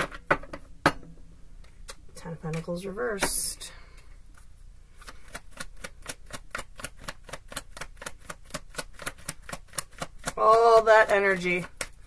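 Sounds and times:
cards clicking while shuffled: 0:05.0 - 0:12.0.

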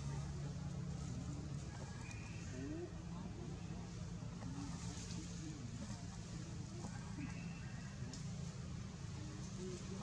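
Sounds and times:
faint indistinct voices: 0:00.0 - 0:10.0
low steady hum: 0:00.0 - 0:10.0.

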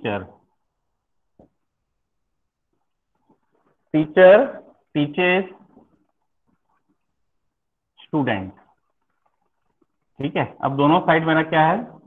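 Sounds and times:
man speaking: 0:00.0 - 0:00.4, 0:03.9 - 0:05.7, 0:08.0 - 0:08.6, 0:10.2 - 0:12.0.

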